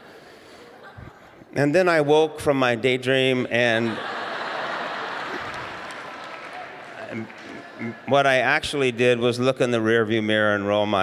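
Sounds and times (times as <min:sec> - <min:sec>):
congregation laughing: 0:00.0 - 0:01.6, 0:03.6 - 0:09.0.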